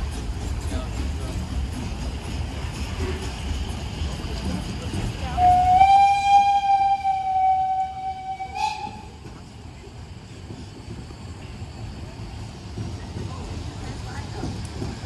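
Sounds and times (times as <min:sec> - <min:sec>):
train coaches rumbling: 0:00.0 - 0:15.0
steam locomotive whistle: 0:05.3 - 0:09.2.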